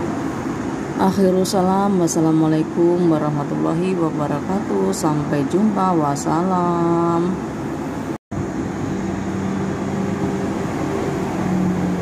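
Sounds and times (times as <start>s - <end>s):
heavy vehicles passing: 6.8s - 12.0s.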